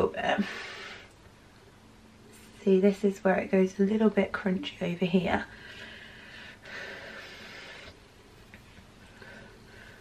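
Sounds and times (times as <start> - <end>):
person breathing: 0.4 - 1.2, 5.5 - 8.0, 9.1 - 10.0.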